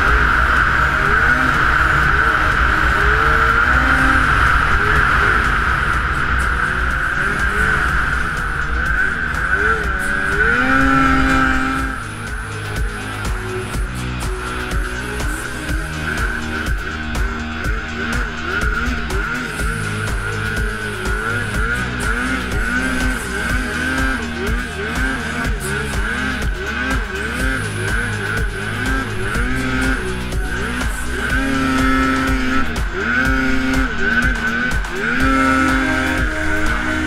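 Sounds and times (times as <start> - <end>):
snowmobile engine revving: 0.0 - 37.0.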